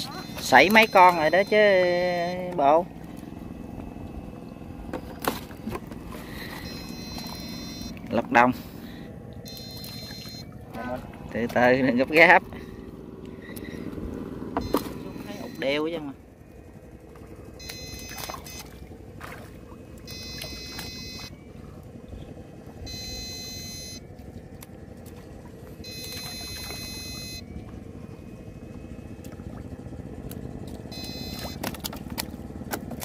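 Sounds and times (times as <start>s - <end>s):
low steady rumble: 0.0s - 33.0s.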